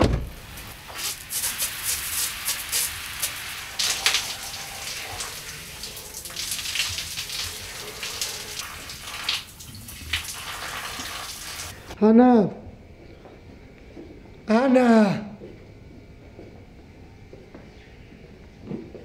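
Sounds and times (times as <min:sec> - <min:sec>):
shower water spraying and splashing: 0:00.3 - 0:12.0.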